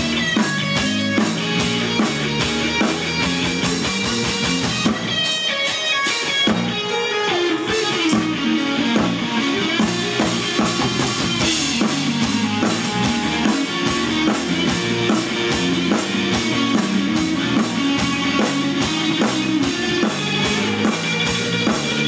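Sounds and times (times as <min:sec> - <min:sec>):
electric bass: 0:00.0 - 0:05.3, 0:07.5 - 0:22.0
drums: 0:00.0 - 0:22.0
electric guitar lead lines: 0:00.0 - 0:22.0.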